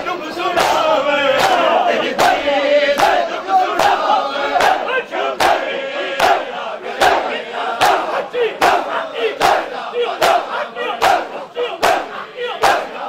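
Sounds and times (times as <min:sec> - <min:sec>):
men chanting: 0:00.0 - 0:13.0
chest beating slaps: 0:00.6 - 0:03.2, 0:04.6 - 0:05.6, 0:06.2 - 0:07.2, 0:07.8 - 0:13.0.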